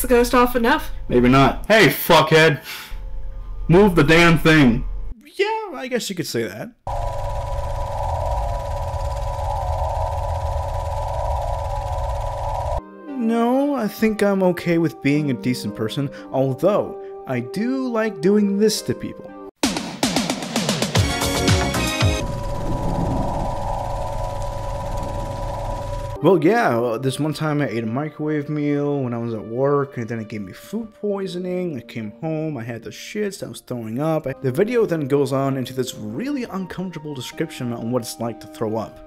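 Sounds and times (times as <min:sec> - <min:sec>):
deep rumble: 0:06.9 - 0:12.8, 0:22.2 - 0:26.2
dense mid-pitched hum: 0:06.9 - 0:12.8, 0:22.2 - 0:26.2
held drone tones: 0:06.9 - 0:12.8, 0:21.2 - 0:26.3.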